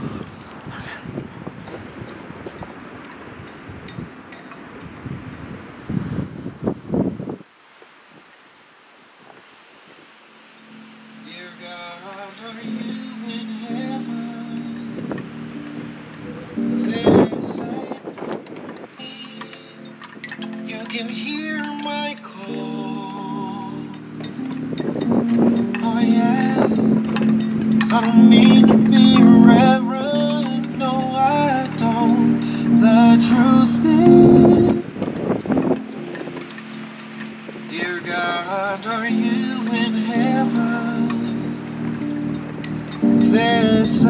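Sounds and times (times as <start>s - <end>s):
wind buffeting microphone: 0.0s - 8.4s, 12.5s - 44.0s
faint hiss: 5.9s - 44.0s
music track: 10.6s - 44.0s
woman singing slow r and b song: 11.3s - 15.0s, 19.0s - 19.9s, 25.8s - 27.0s, 27.9s - 35.0s, 37.7s - 41.6s, 43.0s - 44.0s.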